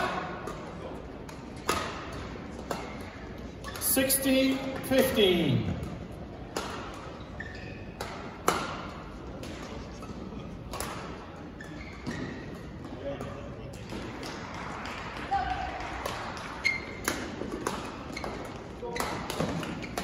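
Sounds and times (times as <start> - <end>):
rackets striking shuttlecock: 0.0 - 3.9, 5.8 - 7.2, 7.8 - 11.2, 16.0 - 20.0
shoes squeaking on court: 6.8 - 13.0, 16.6 - 20.0.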